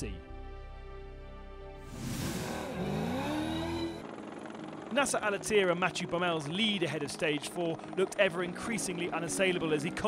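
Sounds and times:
rally car engine revving: 2.2s - 4.0s.

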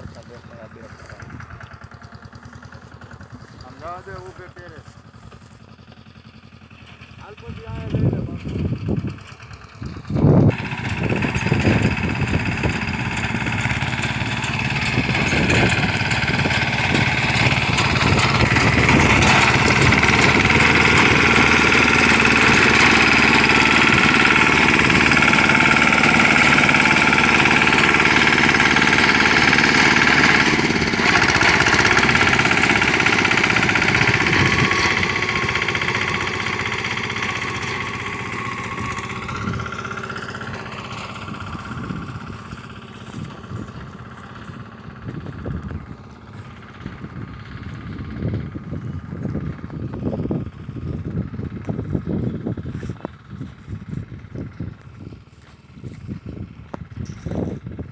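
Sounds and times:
tractor engine: 0.0s - 57.9s
reaper binder machine noise: 7.2s - 57.9s.

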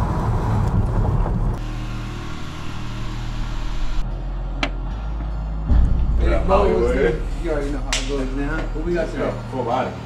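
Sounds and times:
car engine and road hum: 0.0s - 5.0s.

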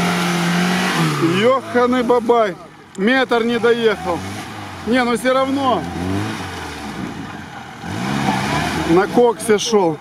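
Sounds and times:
car engine revving: 0.0s - 10.0s.

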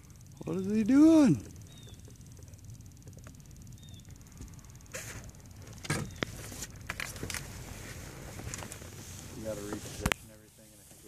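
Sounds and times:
steady low rumble: 0.0s - 11.0s.

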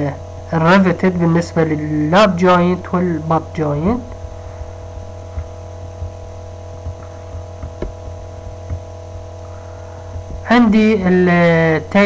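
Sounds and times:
electrical hum: 0.0s - 12.0s
faint ticks: 4.1s - 10.5s.

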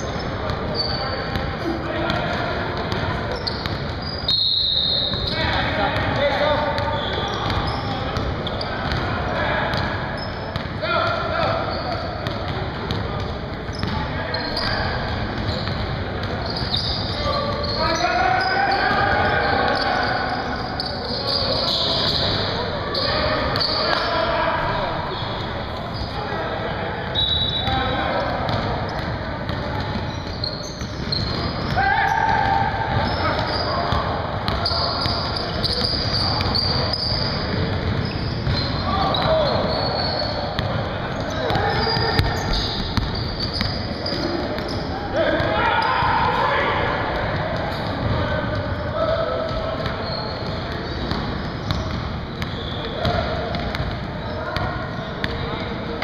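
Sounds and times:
players calling out: 0.0s - 56.0s.

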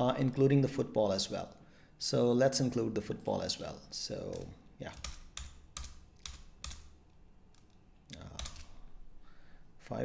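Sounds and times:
computer keyboard keystrokes: 4.3s - 6.9s, 8.3s - 8.7s.

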